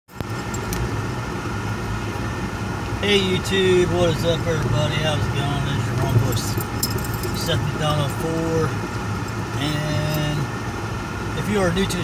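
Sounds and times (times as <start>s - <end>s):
car engine and road noise: 0.1s - 12.0s.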